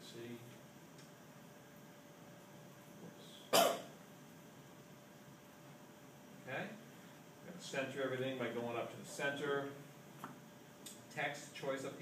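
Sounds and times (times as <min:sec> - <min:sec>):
short cough: 0:03.5 - 0:03.9.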